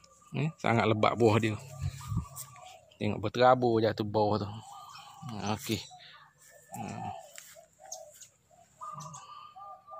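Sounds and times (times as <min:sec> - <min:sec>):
bird calling: 0:00.0 - 0:09.9.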